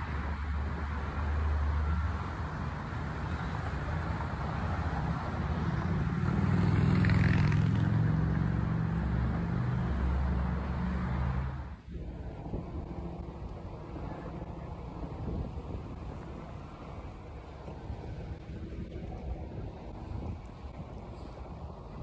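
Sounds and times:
road traffic: 0.0s - 22.0s
wind rumbling on microphone: 0.0s - 22.0s.

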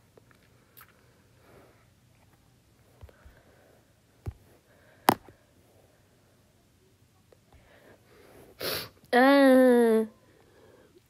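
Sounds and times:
person sniffing: 8.4s - 9.0s.

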